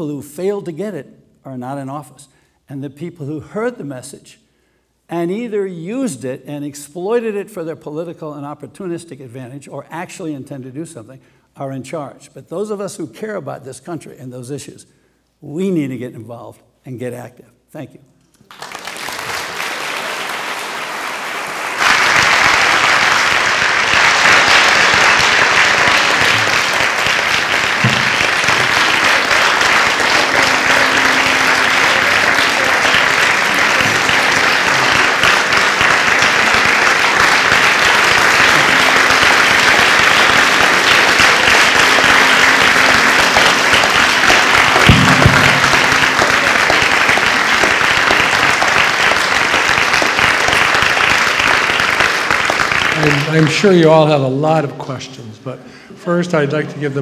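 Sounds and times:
audience applause: 18.5 - 53.9.

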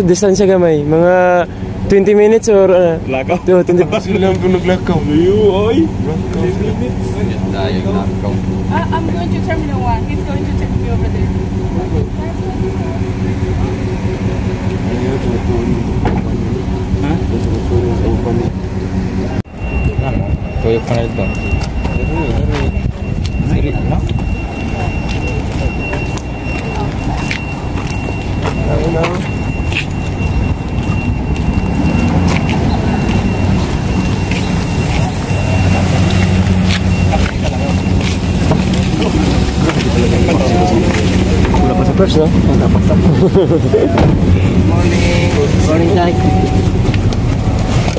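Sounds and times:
people talking: 0.0 - 31.0, 32.2 - 47.9
van engine idling: 0.0 - 47.9.

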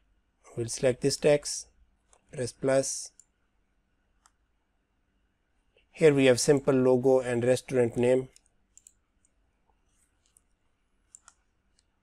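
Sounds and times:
computer mouse clicks: 4.2 - 4.4, 7.9 - 9.4, 10.0 - 11.9.

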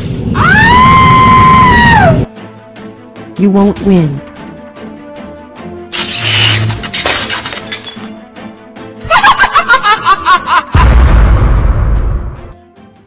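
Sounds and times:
background music: 1.9 - 13.0
cartoon glass shatter: 5.9 - 8.1
low boom: 10.8 - 12.5.

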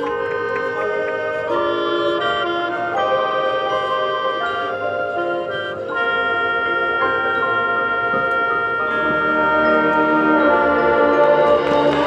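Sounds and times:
mallet keyboards: 0.0 - 12.0
marching band playing held chords: 0.0 - 12.0.

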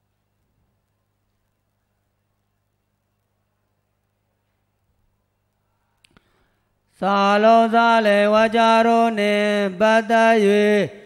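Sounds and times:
faint clicks: 0.0 - 6.5.

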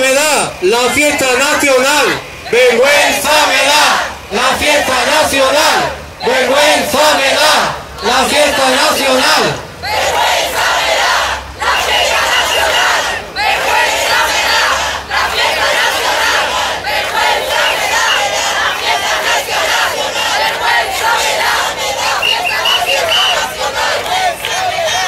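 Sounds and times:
crowd chanting in unison: 0.8 - 25.0.

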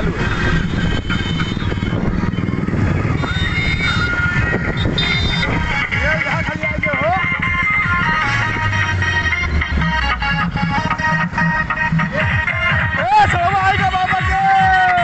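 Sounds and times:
wind rumble on microphone: 0.0 - 8.9
motorcycle engines running: 0.0 - 15.0
music with singing from loudspeakers: 2.6 - 15.0.

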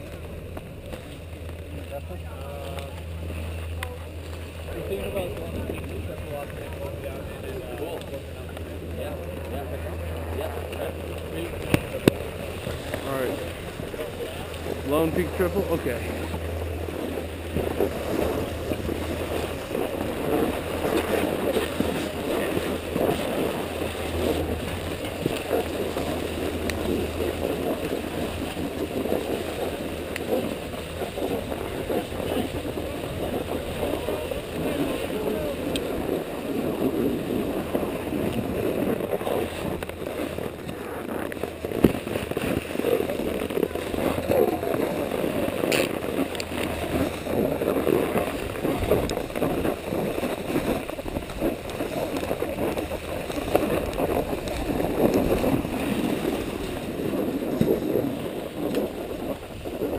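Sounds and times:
skis scraping over snow: 0.0 - 59.9
wind buffeting microphone: 0.0 - 59.9.

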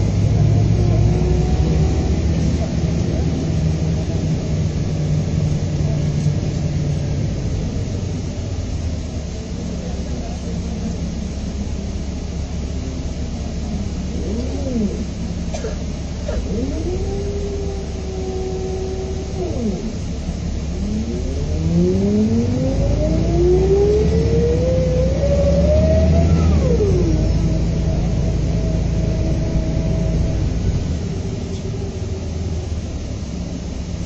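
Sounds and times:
diesel coach engine accelerating: 0.0 - 34.0.

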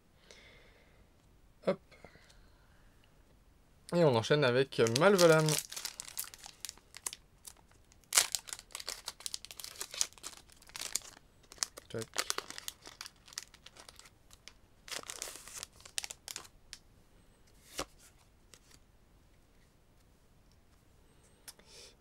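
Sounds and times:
foil wrapper tearing and crinkling: 4.8 - 16.5.

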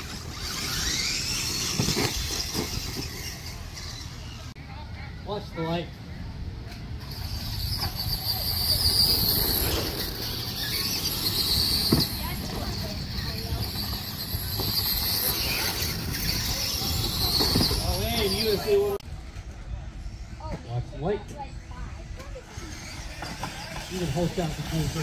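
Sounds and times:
electric toy truck motors whining: 0.0 - 4.6, 7.0 - 19.0, 22.3 - 25.0.

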